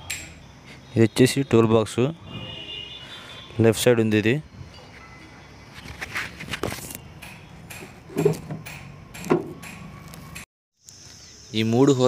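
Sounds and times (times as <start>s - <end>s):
knocks on metal tool box: 7.3s - 9.9s.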